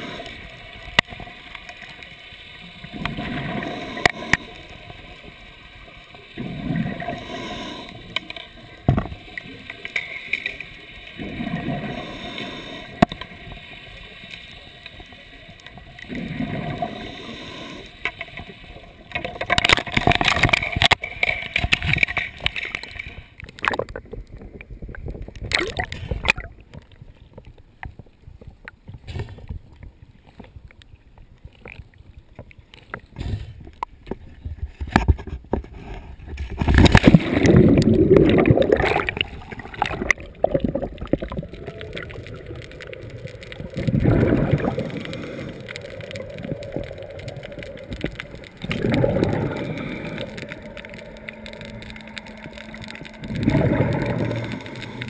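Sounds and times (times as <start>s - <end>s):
water sloshing and splashing: 0.0s - 55.0s
faint steady hum: 35.8s - 55.0s
water drips: 36.8s - 55.0s.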